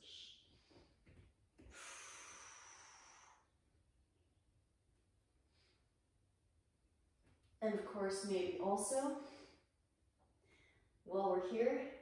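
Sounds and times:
woman breathing out: 0:01.6 - 0:03.6.

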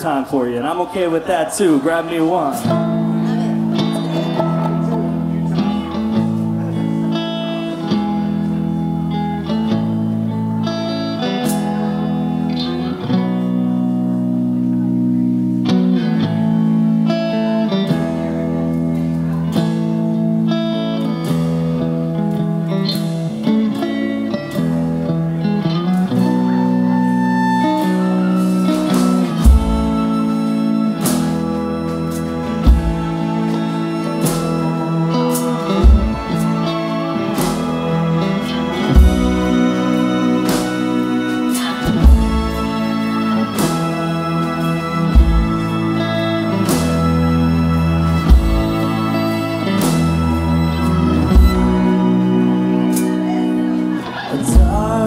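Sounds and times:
keyboard chords: 0:00.0 - 0:55.0
upright bass: 0:00.0 - 0:55.0
violin: 0:00.0 - 0:55.0
electric guitar: 0:02.2 - 0:55.0.

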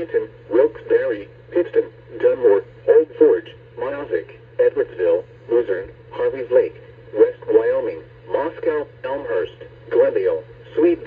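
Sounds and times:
steady low hum: 0:00.0 - 0:11.0
voice through radio speaker: 0:00.0 - 0:11.0.

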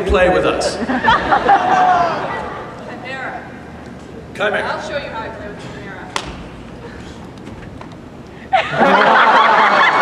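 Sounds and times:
audience laughing: 0:00.7 - 0:02.9, 0:08.5 - 0:10.0.

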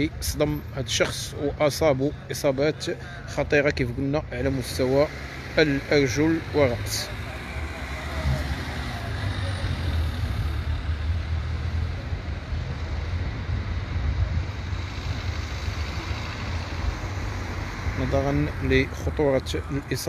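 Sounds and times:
bystanders' voices: 0:00.0 - 0:10.9
city street rumble: 0:00.0 - 0:20.0.

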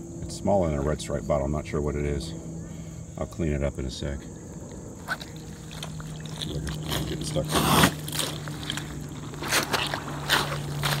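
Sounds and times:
mud squelching underfoot: 0:04.6 - 0:11.0.

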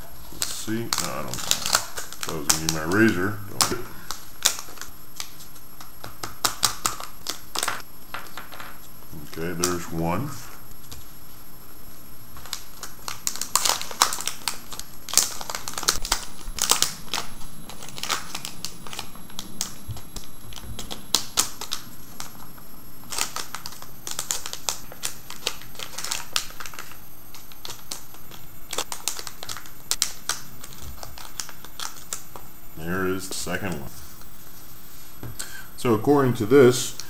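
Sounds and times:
plastic bag crackling: 0:00.2 - 0:08.6, 0:12.3 - 0:32.4.

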